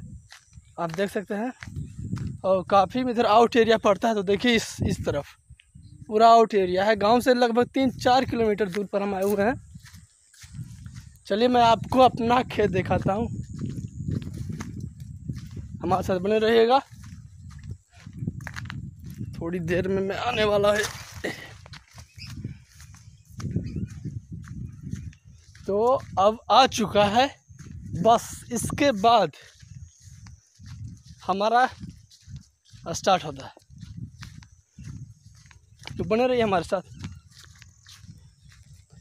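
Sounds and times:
wind noise: 0.0 - 39.0
microphone handling rumble: 1.6 - 39.0.

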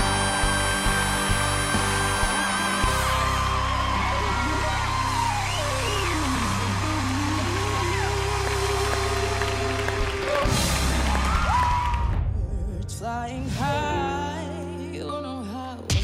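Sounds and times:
live rock band playing: 0.0 - 11.7.

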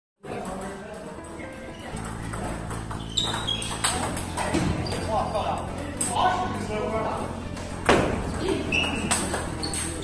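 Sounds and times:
table tennis ball clicking: 1.9 - 4.4, 8.3 - 10.0.

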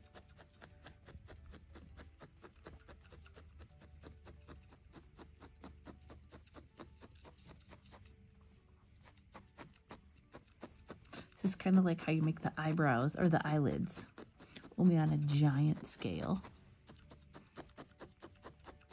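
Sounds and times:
felting needle stabbing wool: 0.0 - 8.2, 8.8 - 18.9.

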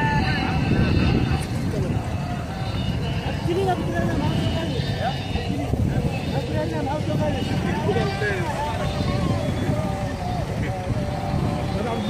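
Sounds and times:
people talking and calling: 0.0 - 12.0
steady low rumble: 0.0 - 12.0.

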